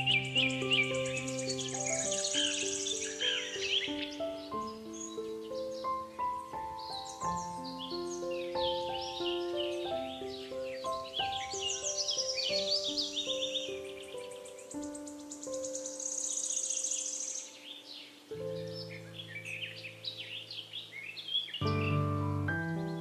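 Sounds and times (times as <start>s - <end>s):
birds chirping and trilling: 0.0s - 23.0s
slow soft piano music: 0.0s - 23.0s.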